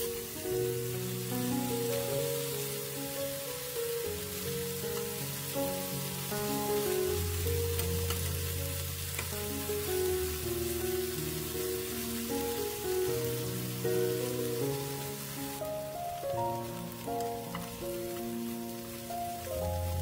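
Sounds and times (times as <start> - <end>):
background music melody: 0.0 - 20.0
food sizzling in hot oil: 0.0 - 20.0.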